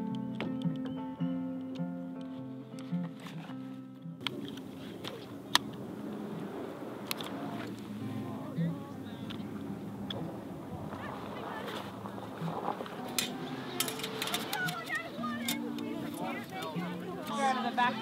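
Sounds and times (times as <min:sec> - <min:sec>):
acoustic guitar music: 0:00.0 - 0:18.0
wind on microphone: 0:04.6 - 0:15.2.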